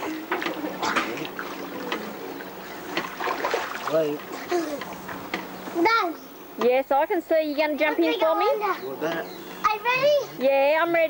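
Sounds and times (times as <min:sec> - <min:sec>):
faint voices: 0:00.0 - 0:03.1
pool water sloshing and splashing: 0:00.0 - 0:05.2.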